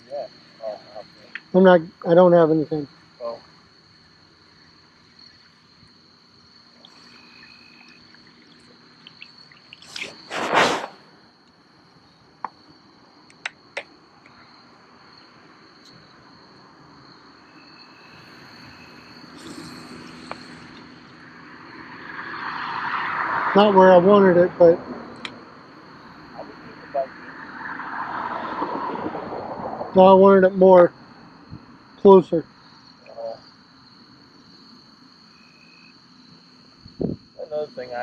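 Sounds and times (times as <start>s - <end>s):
insects chirring: 0.0s - 38.0s
brief loud noise: 10.0s - 11.0s
sharp clicks: 13.3s - 14.4s.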